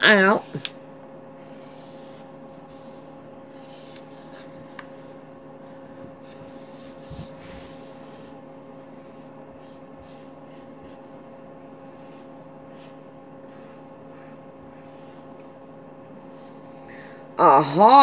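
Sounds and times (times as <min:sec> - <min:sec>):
electrical hum: 0:00.0 - 0:18.0.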